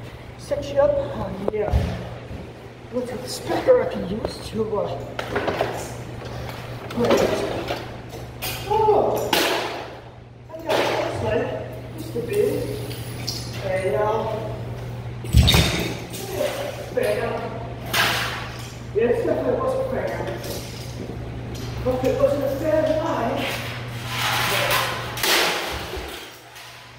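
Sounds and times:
steady low hum: 0.0s - 26.9s.

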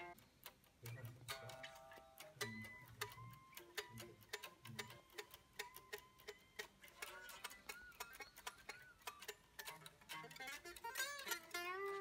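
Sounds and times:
unamplified electric guitar picking: 0.0s - 0.2s, 0.9s - 12.0s.

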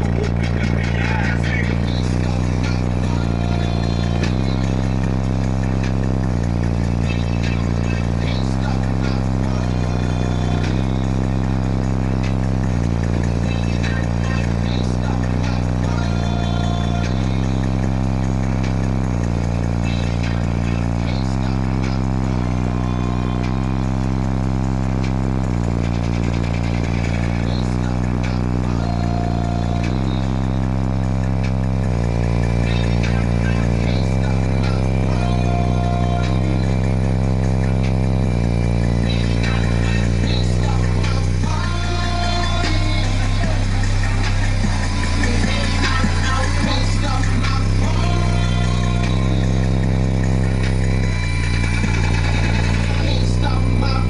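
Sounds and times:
loud bass-heavy music: 0.0s - 54.0s.

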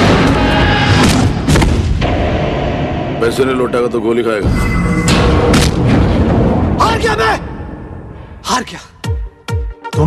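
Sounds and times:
loud booming impacts: 0.0s - 8.2s.

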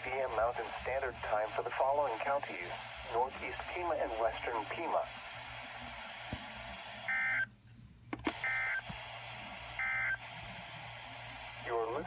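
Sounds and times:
radio hiss: 0.0s - 7.5s, 8.3s - 12.0s
clicks: 8.1s - 9.0s.

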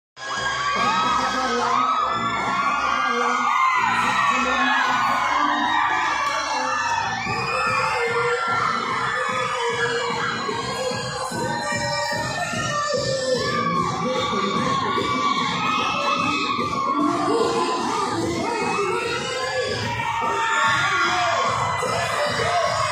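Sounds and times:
audience shouting and cheering: 0.2s - 22.9s
loud dance music: 0.2s - 22.9s.

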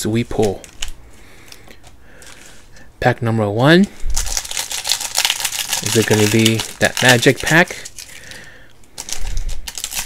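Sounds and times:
foil pack rustling and clicking: 0.3s - 1.6s, 4.2s - 10.0s.

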